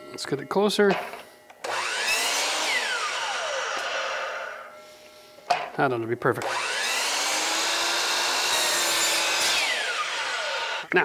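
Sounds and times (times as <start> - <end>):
miter saw cutting: 1.6 - 4.7, 6.4 - 10.9.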